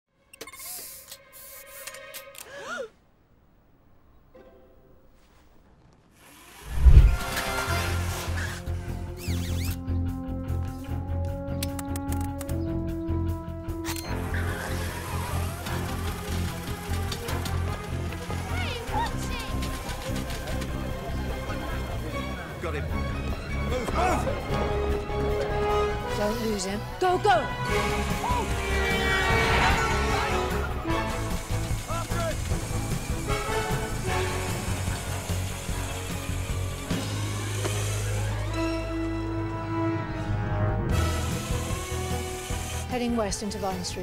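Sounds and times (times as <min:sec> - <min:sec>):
film score music: 0:00.1 - 0:06.1, 0:06.7 - 0:44.0.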